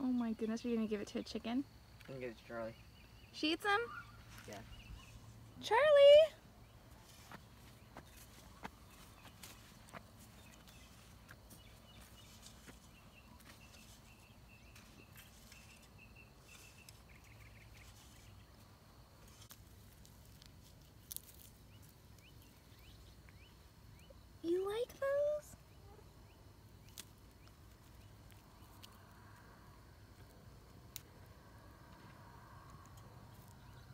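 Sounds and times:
distant high chirping: 0.5 - 18.6
soft ticks and scuffs: 6.8 - 23.5, 26.8 - 31.1.

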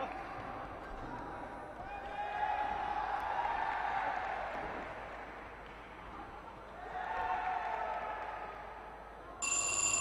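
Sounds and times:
faint arena ambience: 0.0 - 10.0
boxing ring bell ringing: 9.4 - 10.0.

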